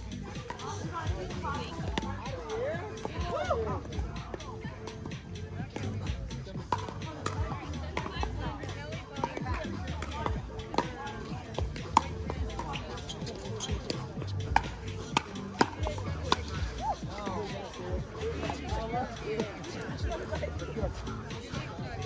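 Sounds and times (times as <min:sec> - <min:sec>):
background music: 0:00.0 - 0:22.0.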